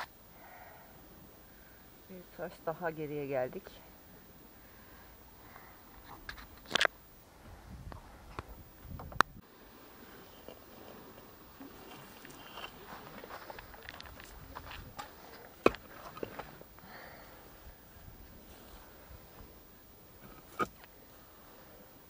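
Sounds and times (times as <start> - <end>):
stones and sand crunching: 10.1 - 16.9.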